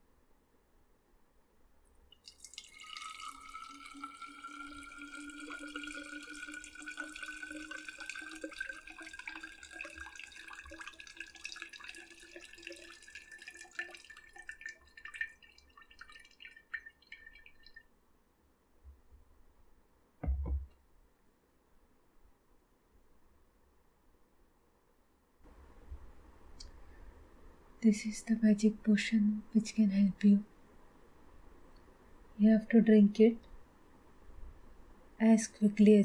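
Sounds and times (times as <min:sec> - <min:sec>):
liquid dripping: 0:02.1 - 0:17.9
liquid pouring into glass bottle: 0:02.1 - 0:17.9.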